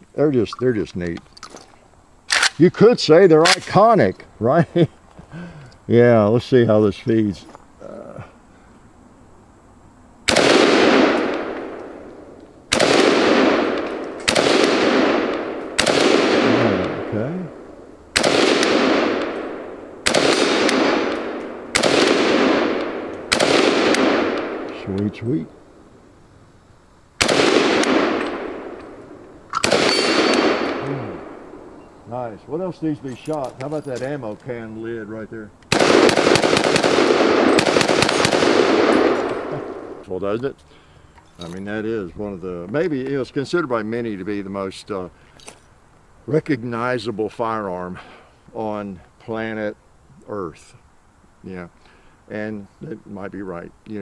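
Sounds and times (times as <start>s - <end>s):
rifle shots with echo: 10.3s - 25.0s, 27.2s - 31.8s, 35.7s - 40.0s.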